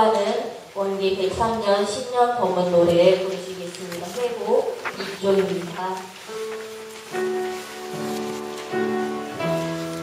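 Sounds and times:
upright piano playing hymn: 0:04.2 - 0:10.0.

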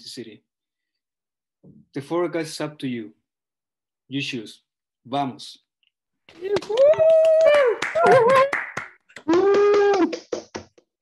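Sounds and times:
people clapping: 0:06.3 - 0:11.0
people cheering with whoops: 0:06.4 - 0:08.6, 0:09.2 - 0:10.2.

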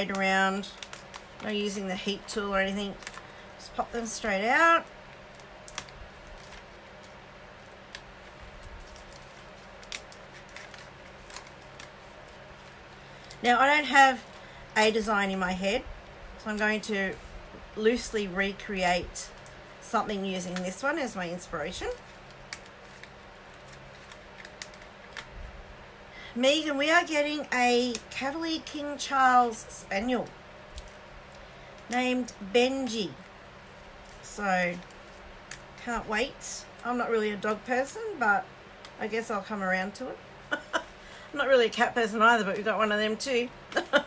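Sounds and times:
paper clicks and crackles: 0:00.0 - 0:01.7, 0:02.8 - 0:03.4, 0:04.8 - 0:13.5, 0:21.6 - 0:25.4, 0:30.7 - 0:31.4
low steady hum: 0:00.0 - 0:44.0.

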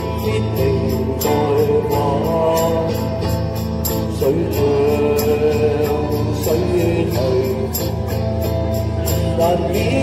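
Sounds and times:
bass: 0:00.0 - 0:10.0
electric guitar: 0:00.0 - 0:10.0
live band pop music: 0:00.0 - 0:10.0.

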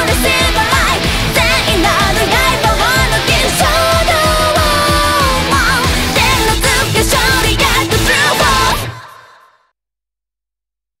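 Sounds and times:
electric guitar chord ringing: 0:00.6 - 0:06.2.

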